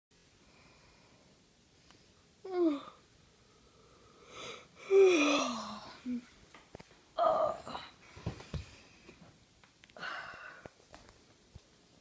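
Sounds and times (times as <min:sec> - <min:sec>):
child groaning: 0:02.5 - 0:03.0, 0:04.8 - 0:06.2, 0:07.2 - 0:07.9.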